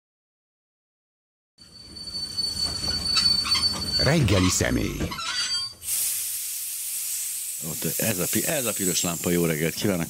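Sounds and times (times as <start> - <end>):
high-pitched squeal: 1.7 - 5.8.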